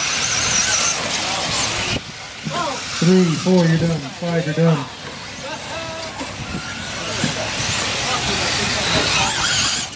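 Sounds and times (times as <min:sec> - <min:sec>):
rc truck tyres and motor hissing: 0:00.0 - 0:09.9.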